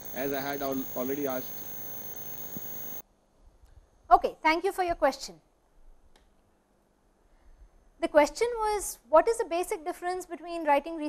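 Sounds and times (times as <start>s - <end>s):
faint clicks: 0.0s - 3.0s
steady hiss with high whine: 0.0s - 3.0s.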